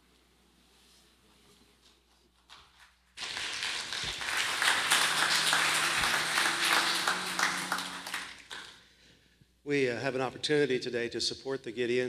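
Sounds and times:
congregation applauding: 0:03.2 - 0:08.8.

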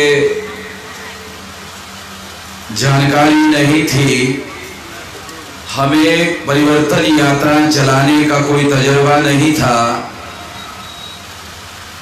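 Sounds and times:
man's amplified voice: 0:00.0 - 0:00.9, 0:02.7 - 0:10.3
steady background noise: 0:00.0 - 0:12.0.

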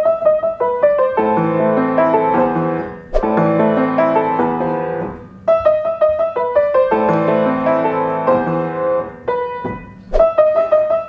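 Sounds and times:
piano melody with bass line: 0:00.0 - 0:11.0.

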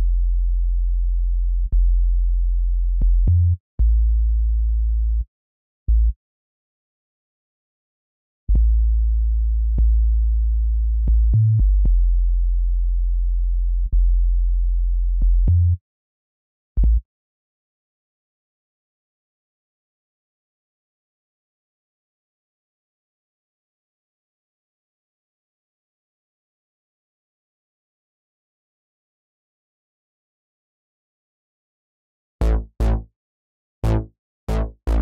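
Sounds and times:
sine-wave synth bass notes: 0:00.0 - 0:03.9, 0:08.5 - 0:15.5, 0:32.4 - 0:33.1, 0:33.8 - 0:35.0
low sine synth bass note: 0:32.4 - 0:33.1, 0:33.8 - 0:35.0.

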